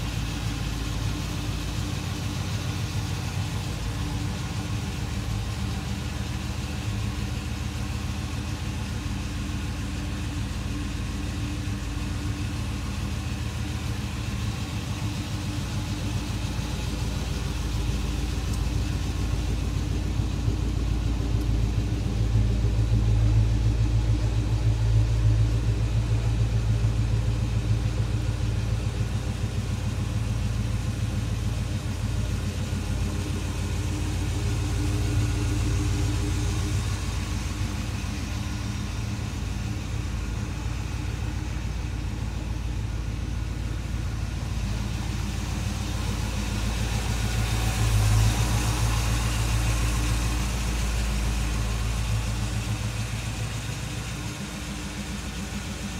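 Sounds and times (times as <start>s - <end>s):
car engine idling: 0.0s - 55.9s.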